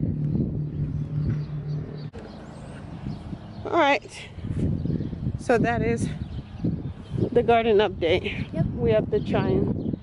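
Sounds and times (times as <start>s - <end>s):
distant motor humming: 0.0s - 9.5s.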